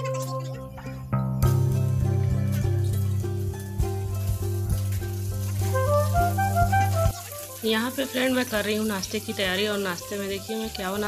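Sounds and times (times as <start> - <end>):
background music with beat: 0.0 - 7.5
vegetables sizzling in oil: 1.4 - 11.0.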